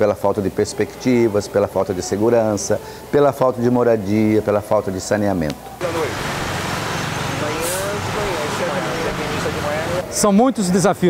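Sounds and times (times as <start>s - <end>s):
street traffic: 5.6s - 11.0s
distant people talking: 5.8s - 11.0s.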